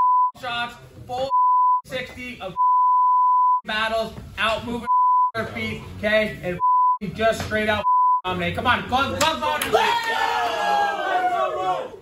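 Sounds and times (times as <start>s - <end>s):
high censor bleep: 2.6s - 3.6s.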